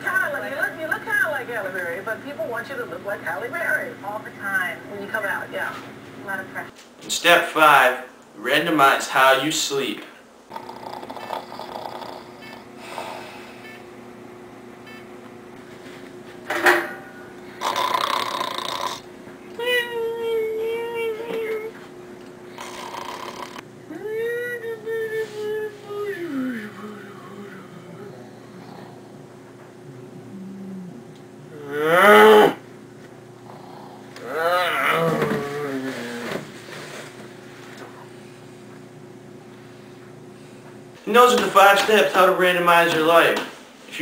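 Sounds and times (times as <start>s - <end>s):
faint hum: 0.0s - 44.0s
person snoring: 10.5s - 13.6s, 17.6s - 19.1s, 22.5s - 24.2s, 25.3s - 29.2s, 33.5s - 36.4s
person's rising vocal noise: 22.6s - 29.1s, 29.8s - 32.6s, 34.2s - 36.4s.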